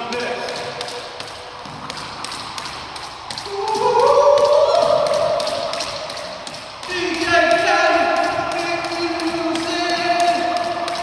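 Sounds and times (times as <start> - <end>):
jump rope tapping wooden floor: 0.0 - 11.0.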